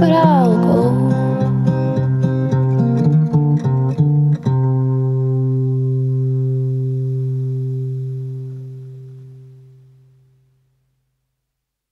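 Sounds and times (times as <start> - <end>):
guitar chord ringing: 0.0 - 10.8.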